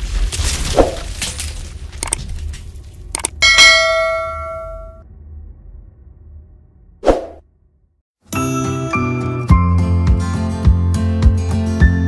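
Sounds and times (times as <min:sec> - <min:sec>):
metallic bell ding: 0:03.4 - 0:05.0
steady low rumble: 0:04.4 - 0:08.0.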